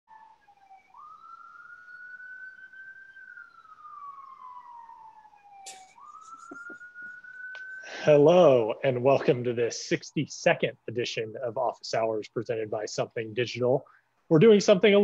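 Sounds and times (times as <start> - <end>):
faint wailing siren: 0.1 - 15.0.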